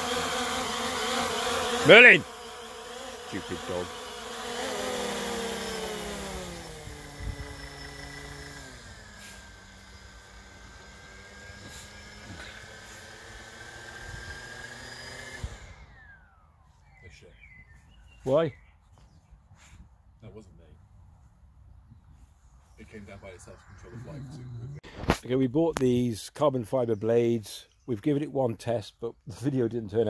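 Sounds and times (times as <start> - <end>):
quadcopter motors whirring: 0.0 - 18.4.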